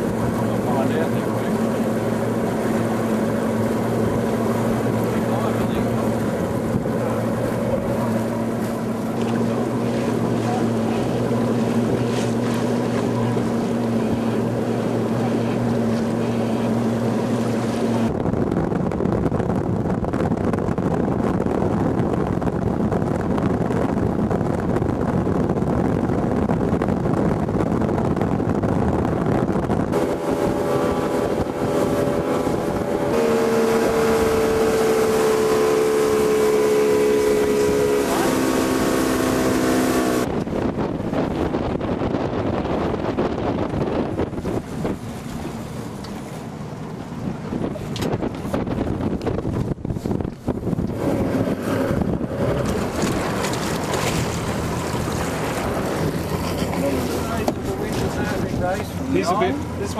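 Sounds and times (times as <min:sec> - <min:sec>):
motorboat engine: 0:00.0 - 0:59.9
water rushing: 0:00.0 - 0:59.9
wind buffeting microphone: 0:00.0 - 0:59.9.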